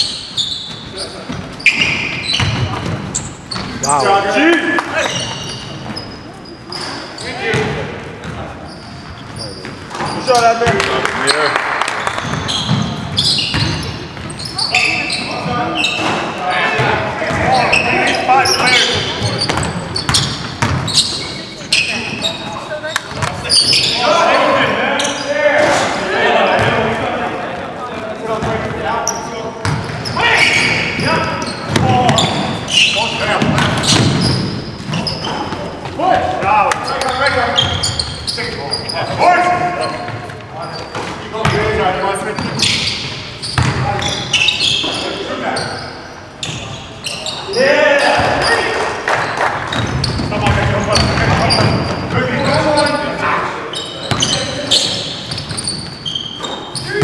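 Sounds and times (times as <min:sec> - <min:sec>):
players' voices and shouts: 0:00.9 - 0:57.0
basketball bouncing on hardwood floor: 0:33.4 - 0:34.3.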